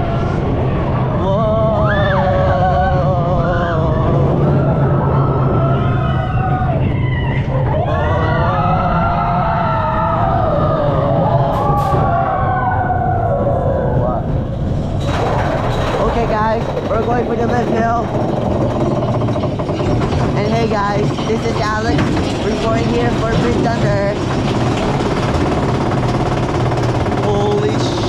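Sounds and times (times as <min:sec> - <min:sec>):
roller coaster rumbling on track: 0:00.0 - 0:28.0
riders shouting and whooping: 0:04.4 - 0:14.0
rhythmic clattering of lift hill: 0:14.3 - 0:28.0.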